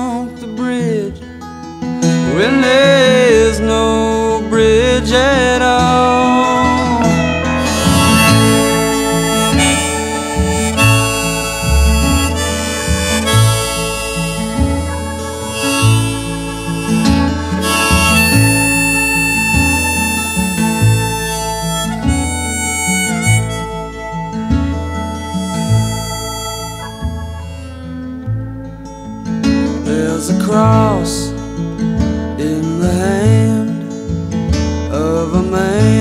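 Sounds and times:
acoustic guitar: 0.0s - 36.0s
harmonica solo: 2.0s - 31.2s
bass line: 2.0s - 36.0s.

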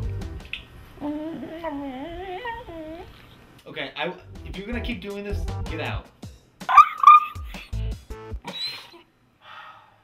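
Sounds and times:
background music: 0.0s - 0.5s, 4.1s - 8.6s
small dog whining: 1.0s - 3.3s, 6.7s - 7.5s, 8.5s - 9.0s.

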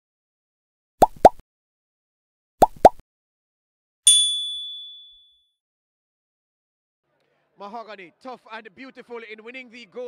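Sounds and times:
notification bell ding: 4.1s - 5.4s.

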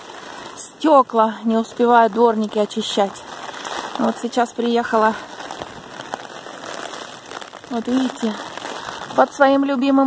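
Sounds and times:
raindrop taps: 0.0s - 9.7s
rain drumming on umbrella: 0.0s - 10.0s.

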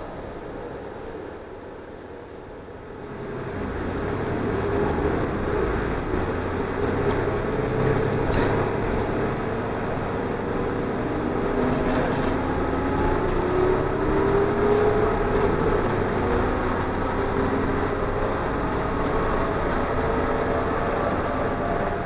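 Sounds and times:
bus engine accelerating: 0.0s - 22.0s.

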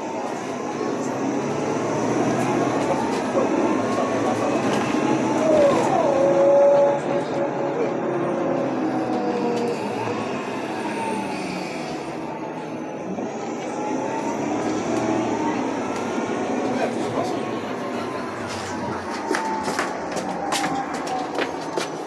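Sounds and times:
bus engine running: 0.0s - 22.0s
road noise rumble: 0.0s - 22.0s.

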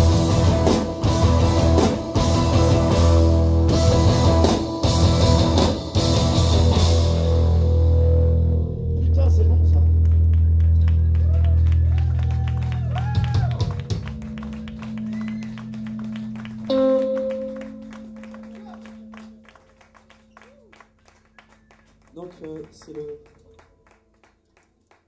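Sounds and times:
sustained bass and guitar notes: 0.0s - 20.7s.

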